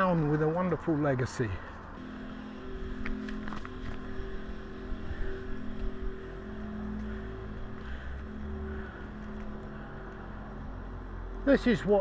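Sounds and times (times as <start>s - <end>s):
vehicle engine rumbling: 0.0s - 12.0s
faint held tones: 2.0s - 11.5s.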